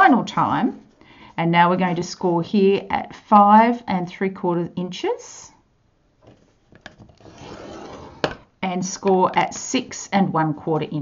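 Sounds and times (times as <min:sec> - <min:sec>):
stylus scraping across paper: 0:07.2 - 0:08.3.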